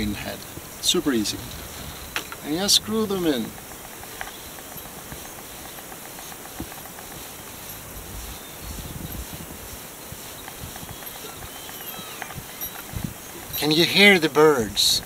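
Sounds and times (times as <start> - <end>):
outdoor background hiss: 0.0 - 15.0
faint songbird calls: 1.6 - 14.2.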